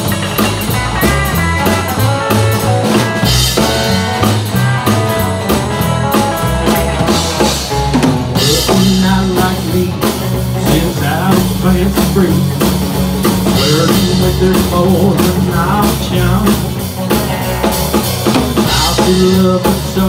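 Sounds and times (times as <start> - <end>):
bass guitar: 0.0 - 20.0
drum kit steady beat: 0.0 - 20.0
electric guitar lead line: 0.0 - 20.0.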